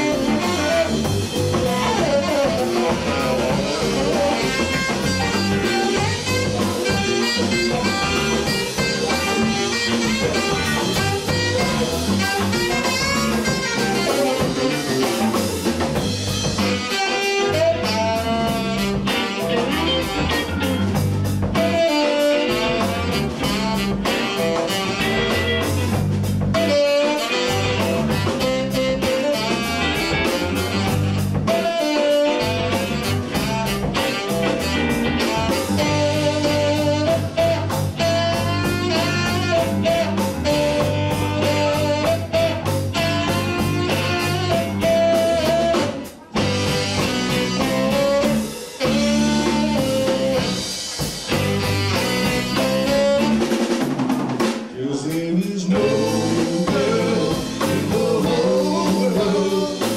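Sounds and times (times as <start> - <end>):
electric guitar: 0.0 - 54.8, 55.7 - 59.9
drum kit: 0.0 - 59.9
electric bass: 0.0 - 59.9
lead line of held notes: 55.7 - 59.9.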